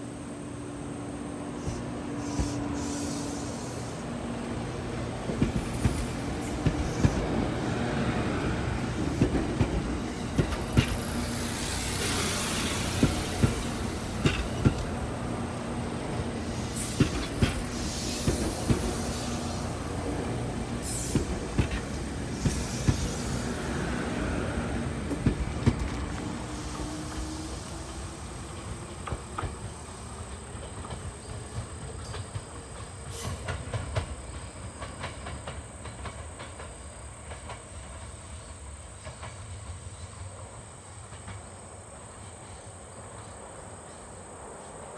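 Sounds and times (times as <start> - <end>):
train rumble: 0.0 - 44.9
train wheels clicking over rail joints: 1.6 - 42.6.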